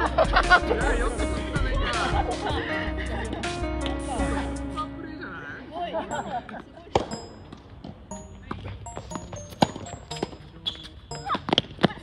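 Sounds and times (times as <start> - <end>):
background music: 0.0 - 11.8
tennis balls hit by rackets: 6.9 - 12.0.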